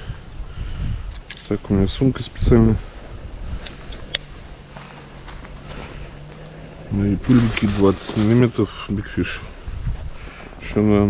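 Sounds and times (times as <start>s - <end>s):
fabric bag rustling: 2.9s - 8.9s.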